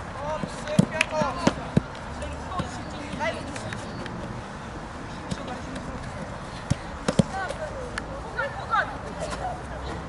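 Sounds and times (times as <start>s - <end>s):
football sharp thuds: 5.3s - 7.6s.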